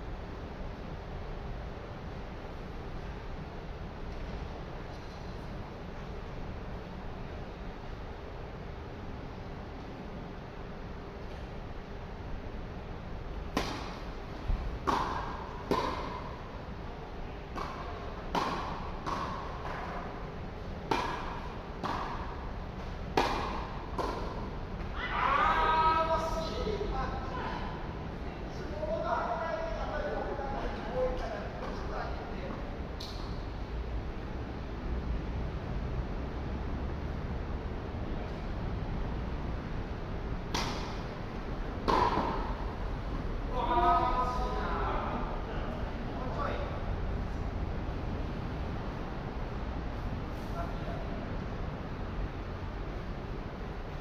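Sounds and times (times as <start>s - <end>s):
low background noise: 0.0s - 54.0s
tennis ball struck by rackets: 13.5s - 16.4s, 17.5s - 20.0s, 20.8s - 24.9s, 40.5s - 41.1s, 41.8s - 42.7s.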